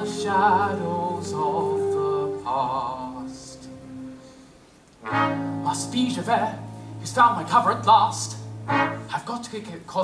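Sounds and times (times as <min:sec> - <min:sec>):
man singing: 0:00.0 - 0:03.9.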